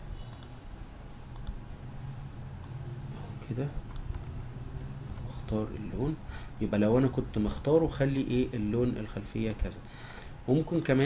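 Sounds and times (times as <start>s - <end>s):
low steady hum: 0.0s - 11.0s
computer mouse clicking: 0.3s - 0.6s, 1.3s - 1.6s, 3.9s - 5.3s, 9.5s - 9.7s, 10.7s - 11.0s.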